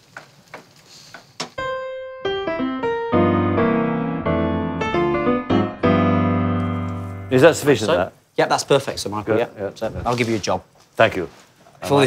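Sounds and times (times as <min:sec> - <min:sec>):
electric piano music: 0:01.6 - 0:07.7.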